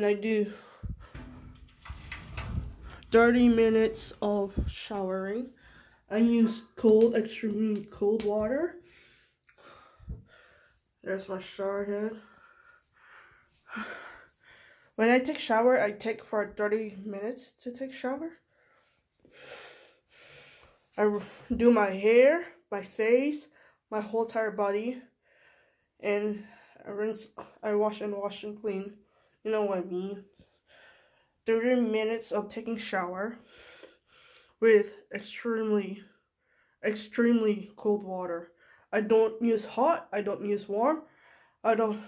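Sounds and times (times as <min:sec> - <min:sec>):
person breathing: 0:05.6 - 0:06.1, 0:08.8 - 0:10.8, 0:41.1 - 0:41.6.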